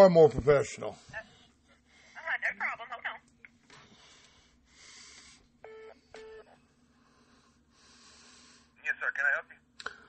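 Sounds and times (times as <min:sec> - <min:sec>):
person speaking on phone line: 0:02.2 - 0:03.3, 0:08.8 - 0:09.6.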